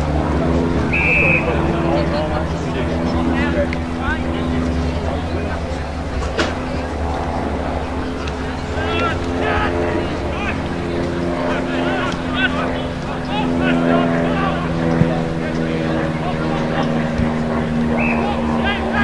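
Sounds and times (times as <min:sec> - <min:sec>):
faint distant shouts: 0:00.0 - 0:19.0.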